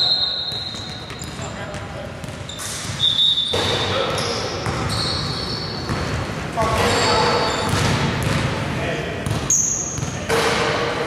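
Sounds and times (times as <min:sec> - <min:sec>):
basketball bouncing on wooden floor: 0:07.7 - 0:08.5.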